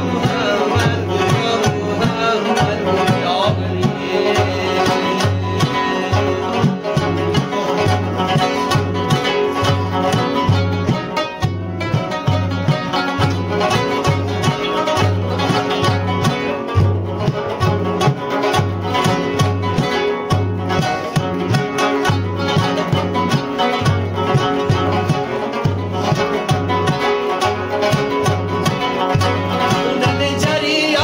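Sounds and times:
frame drum beat: 0.0s - 31.0s
rubab plucked melody: 0.0s - 31.0s.

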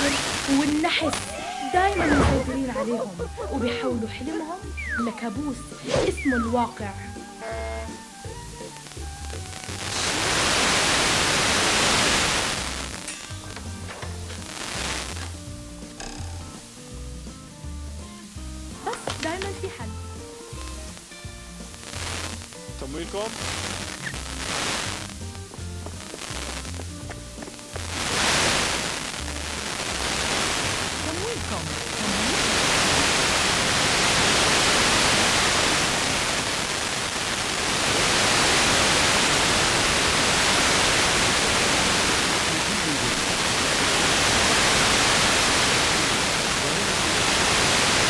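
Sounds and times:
tv receiver hiss: 0.0s - 48.0s
faint programme music: 1.7s - 10.0s, 15.3s - 21.9s.

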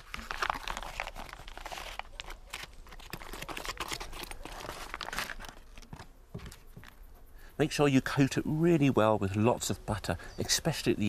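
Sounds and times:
foil wrapper crinkling: 0.0s - 6.9s.

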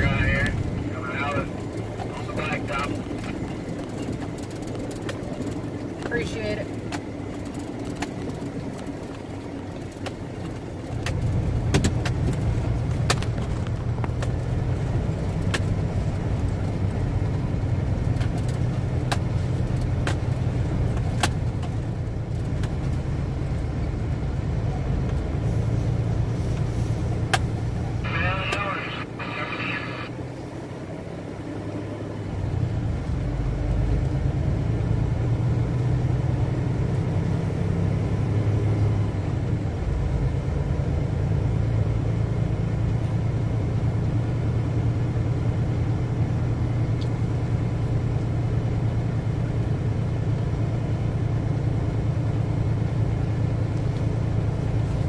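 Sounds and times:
diesel truck engine drone: 0.0s - 55.0s
road noise on gravel: 0.0s - 55.0s.

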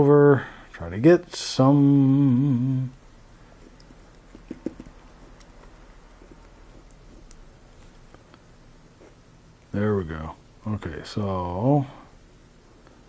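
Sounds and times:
pen tapping: 3.8s - 5.0s.

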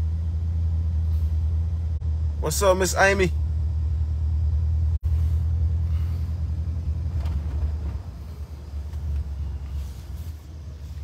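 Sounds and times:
pickup truck engine and road noise: 0.0s - 11.0s.

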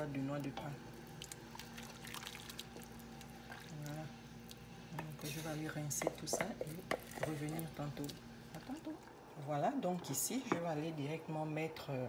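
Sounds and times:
liquid sloshing in pot: 1.1s - 5.5s
spoon clicking and scraping pot: 6.0s - 7.6s.

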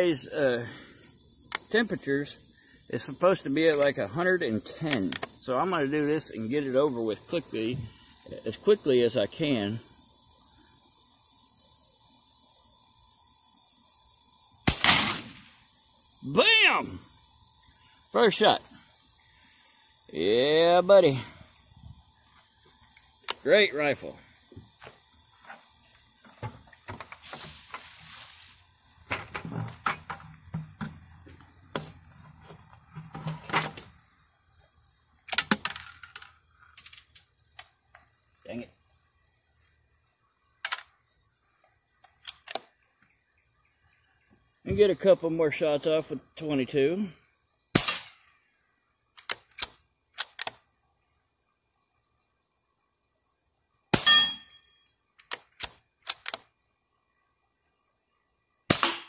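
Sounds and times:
rifle shot echo: 14.6s - 15.5s, 47.8s - 48.2s, 58.7s - 59.0s
rifle action clicks: 49.2s - 50.6s, 55.2s - 56.5s.

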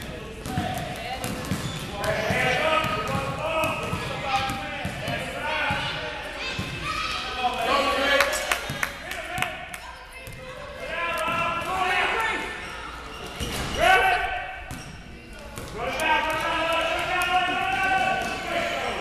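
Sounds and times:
basketball bouncing in a hall: 0.0s - 7.1s, 8.5s - 12.7s, 13.3s - 18.5s.

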